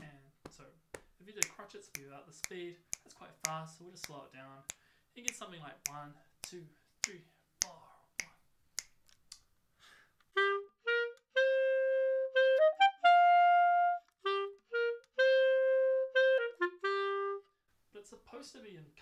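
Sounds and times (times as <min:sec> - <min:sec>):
finger snaps: 0:00.5 - 0:09.5
clarinet playing: 0:10.3 - 0:17.6.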